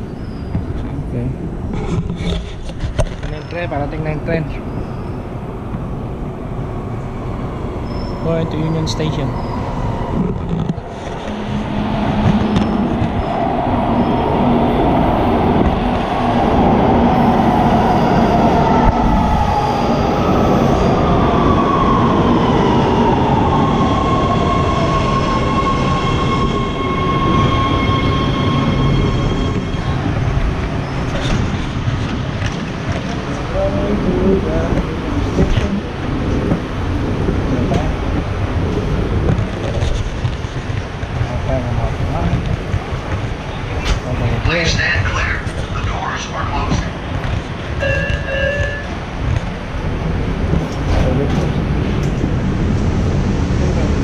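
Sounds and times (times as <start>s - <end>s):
subway train rumble: 2.7s - 54.0s
train whine falling in pitch: 47.8s - 49.0s.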